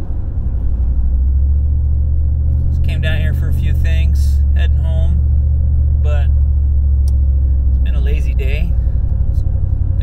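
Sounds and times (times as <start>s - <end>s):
car engine and tyres rumbling: 0.0s - 10.0s.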